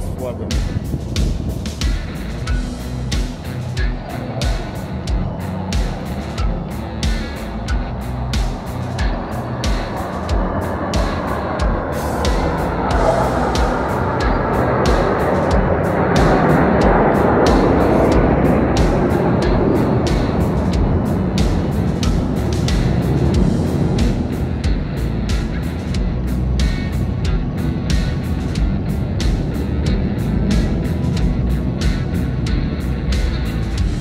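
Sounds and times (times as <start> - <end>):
military jets roaring overhead: 0.0 - 34.0
music playing: 0.0 - 34.0.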